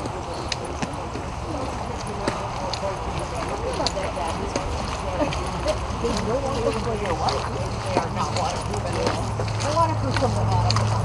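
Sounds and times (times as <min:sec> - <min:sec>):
footsteps on muddy trail: 0:00.0 - 0:11.0
murmur of conversation: 0:00.0 - 0:11.0.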